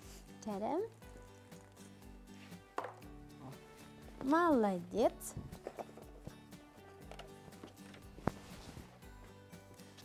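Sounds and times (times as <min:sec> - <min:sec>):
ping-pong ball knocking on tray: 0:02.8 - 0:03.0.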